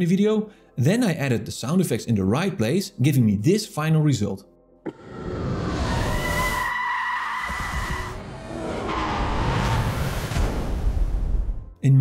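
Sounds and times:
background music: 0.0s - 8.0s.

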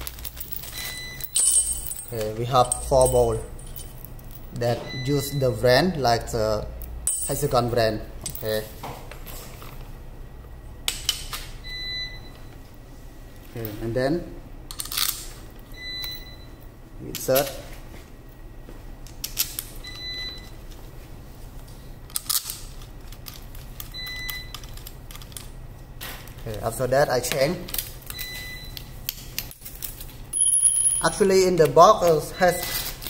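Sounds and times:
metal parts clinking on tile floor: 0.0s - 4.7s, 6.8s - 8.6s, 14.7s - 15.4s, 22.1s - 25.6s, 29.1s - 31.2s.

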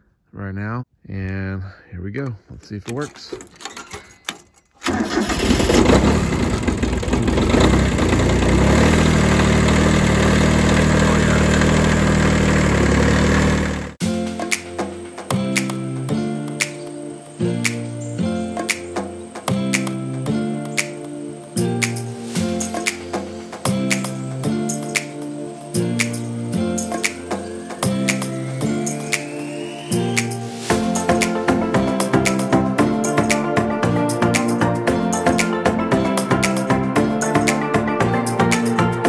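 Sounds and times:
diesel tractor engine starting: 4.8s - 14.0s
rhythmic background music: 14.0s - 39.0s.

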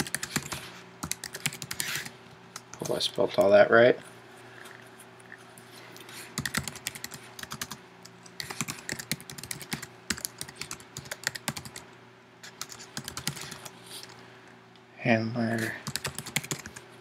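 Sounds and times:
typing on computer keyboard: 0.0s - 3.0s, 6.4s - 7.8s, 8.4s - 11.8s, 12.6s - 13.7s, 15.8s - 16.8s
faint steady hum: 0.0s - 17.0s.

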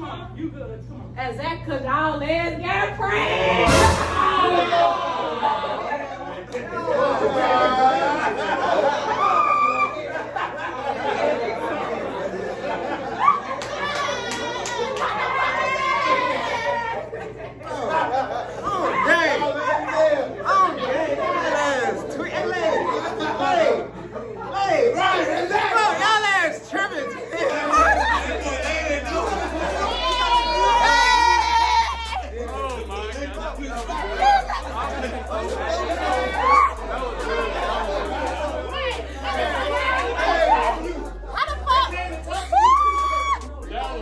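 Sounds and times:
crowd chatter: 0.0s - 44.0s
people talking and shouting: 0.0s - 44.0s
people laughing: 3.4s - 44.0s
music with bass line: 27.8s - 44.0s.

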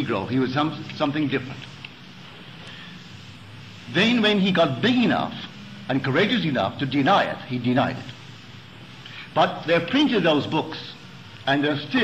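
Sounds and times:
low even hum: 0.0s - 12.0s
tape hiss: 0.0s - 12.0s.

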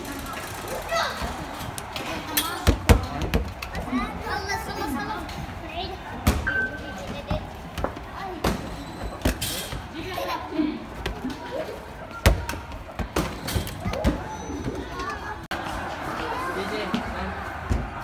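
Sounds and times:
children's voices: 0.0s - 2.8s, 3.6s - 8.6s, 13.8s - 17.0s
basketballs bouncing: 1.7s - 4.0s, 12.1s - 14.3s.

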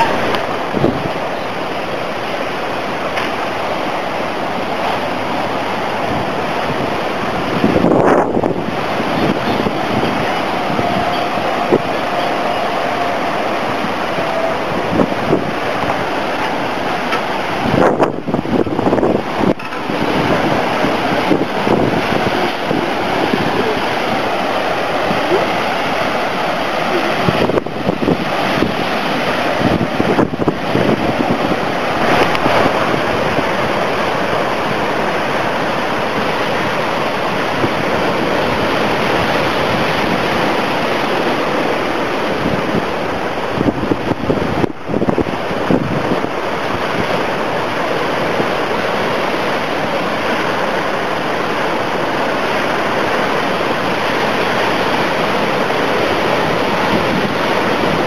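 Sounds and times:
waves breaking on rocky shore: 0.0s - 58.0s
wind buffeting microphone: 0.0s - 58.0s.

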